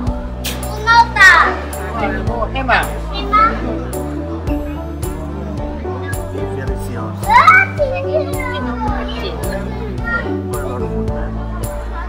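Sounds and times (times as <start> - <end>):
background music sustained notes: 0.0 - 12.0
children calling out: 0.5 - 1.8, 7.2 - 10.8.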